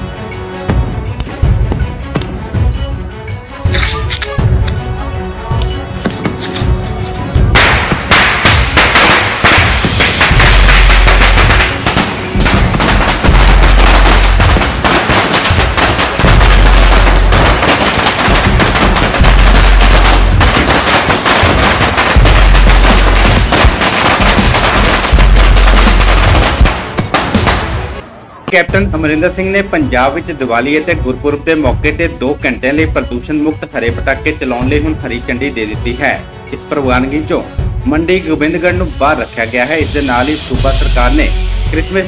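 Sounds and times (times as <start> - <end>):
firecrackers bursting: 7.4 - 28.6.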